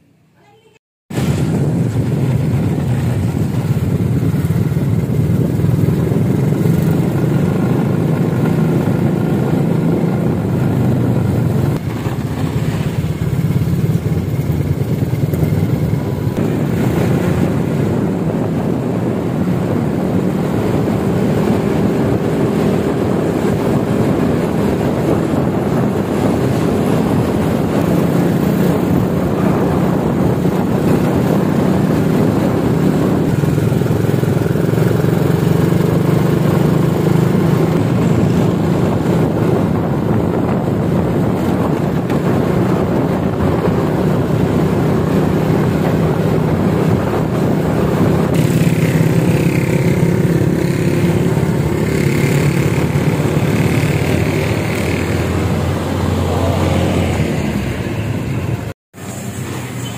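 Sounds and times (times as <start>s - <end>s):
motorcycle engine running: 1.2s - 58.7s.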